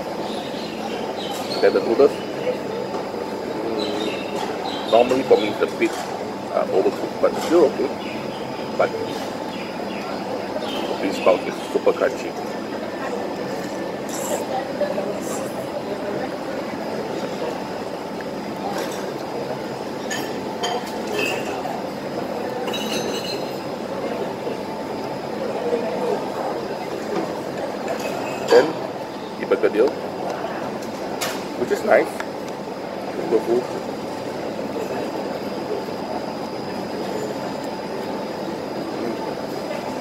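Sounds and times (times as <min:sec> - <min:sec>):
murmur of chatter: 0:00.0 - 0:40.0
cutlery clinking on dishes: 0:20.1 - 0:21.6, 0:22.6 - 0:23.5.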